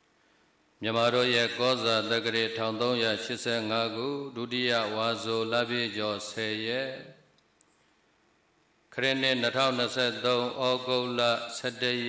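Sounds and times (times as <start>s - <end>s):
breath: 0.1s - 0.6s
person chanting through a microphone: 0.8s - 7.1s, 9.0s - 12.0s.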